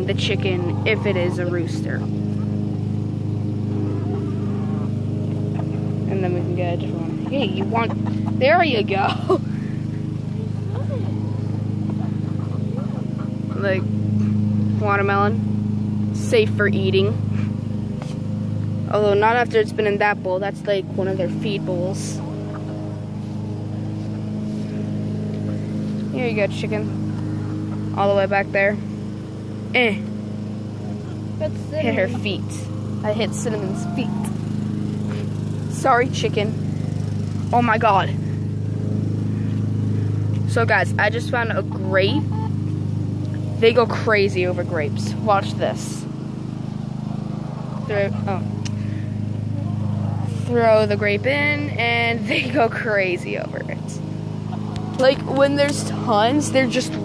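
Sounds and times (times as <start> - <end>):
motor engine running: 0.0 - 57.0.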